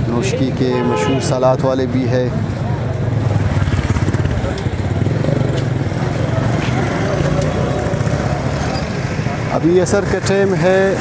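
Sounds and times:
motorcycle engines running: 0.0 - 11.0
people's voices: 0.0 - 11.0.

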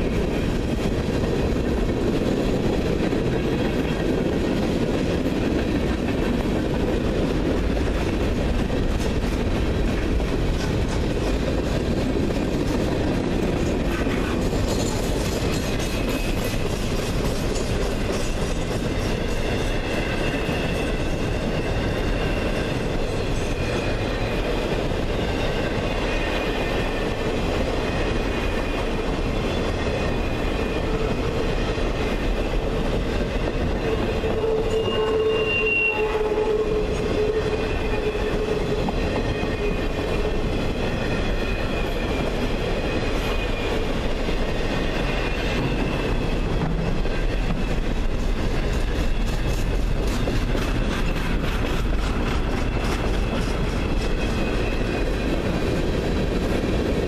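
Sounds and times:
train wheels rumbling on rails: 0.0 - 57.0
wheels squealing: 33.8 - 39.8.

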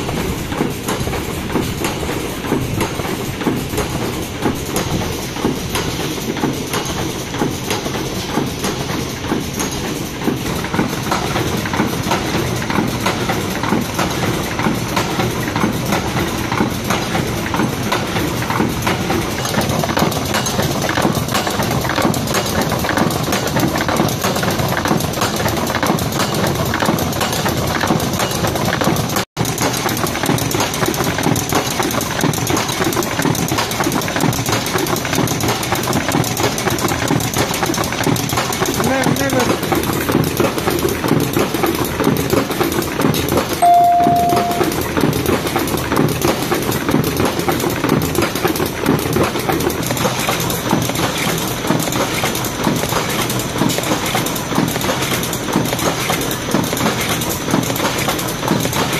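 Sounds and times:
machine mechanical clatter: 0.0 - 43.6, 44.9 - 58.9.

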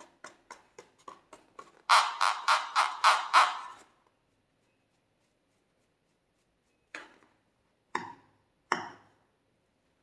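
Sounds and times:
fingers rubbing a balloon: 0.1 - 6.6.

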